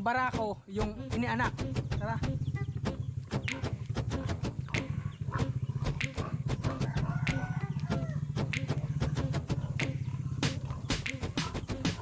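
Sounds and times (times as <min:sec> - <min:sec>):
low microphone rumble: 0:00.4 - 0:12.0.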